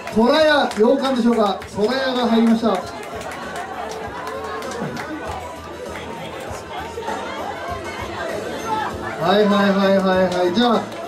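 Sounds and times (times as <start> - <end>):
man's voice over loudspeaker: 0.0 - 3.0, 9.2 - 11.0
crowd chattering: 0.0 - 11.0.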